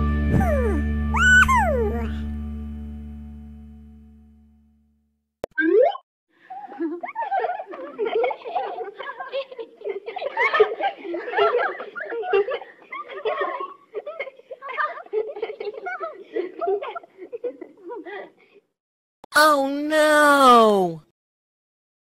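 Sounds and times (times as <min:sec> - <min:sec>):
high-pitched voices laughing: 0:06.6 - 0:18.4.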